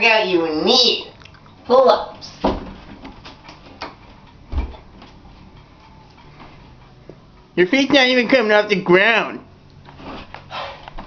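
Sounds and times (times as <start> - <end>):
dull thump on wooden door: 2.4 - 2.8, 4.5 - 4.8.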